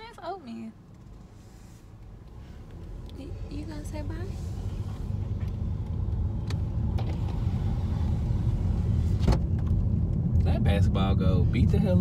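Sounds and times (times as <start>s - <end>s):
car rumbling on the move: 0.0s - 12.0s.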